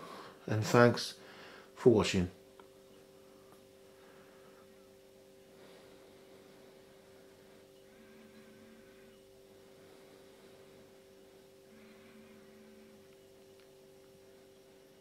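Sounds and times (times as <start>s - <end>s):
faint two-note hum: 2.3s - 15.0s.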